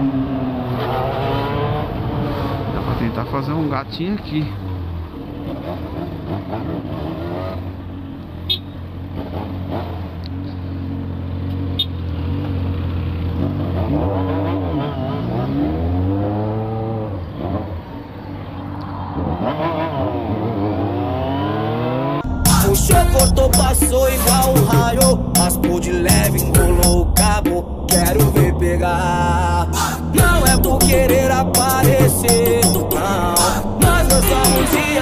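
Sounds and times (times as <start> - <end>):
motorcycle engine revving: 4.6 - 18.3, 19.1 - 35.0.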